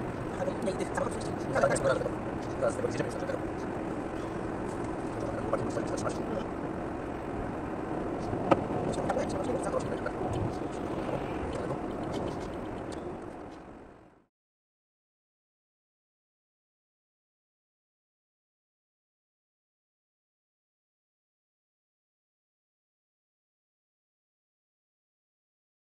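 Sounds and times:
car tyres and engine drone: 0.0 - 14.3.

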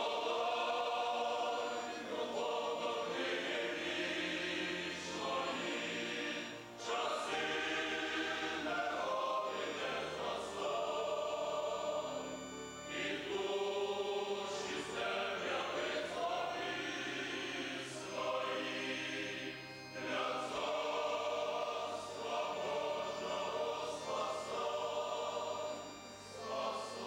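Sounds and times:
choir singing a hymn: 0.0 - 27.0.

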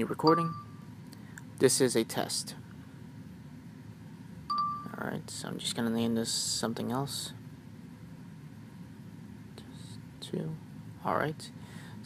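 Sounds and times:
faint room hiss: 0.0 - 12.0
electronic chime tone: 0.2 - 0.8, 4.5 - 5.0.

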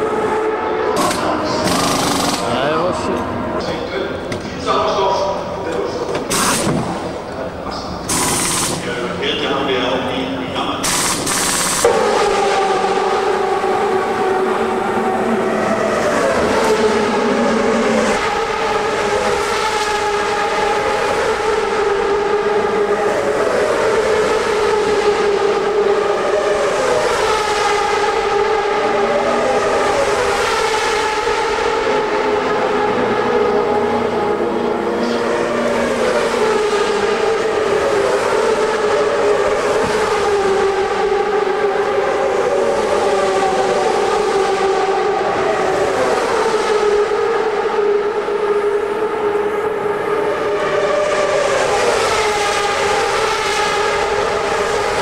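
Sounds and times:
race cars passing at high revs: 0.0 - 55.0.

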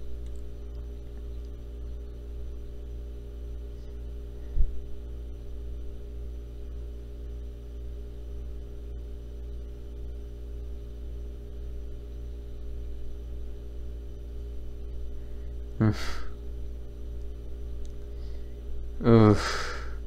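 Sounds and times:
electrical hum: 0.0 - 20.0.

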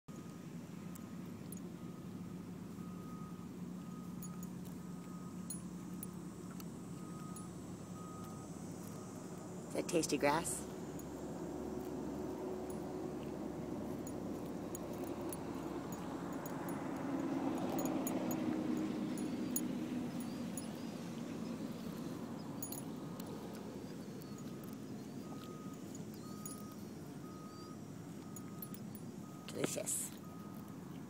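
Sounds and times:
passing traffic hum: 0.1 - 31.0
dog chewing grass: 0.2 - 31.0.

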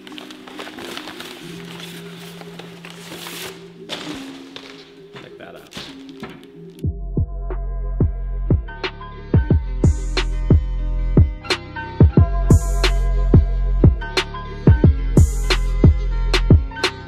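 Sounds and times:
paper wrapping rustling: 0.0 - 6.8
background music: 0.0 - 17.0
deep bass hits: 6.9 - 11.4.

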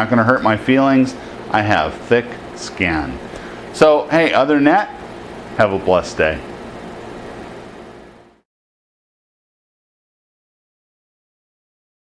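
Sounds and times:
room hum and hiss: 0.0 - 8.4.

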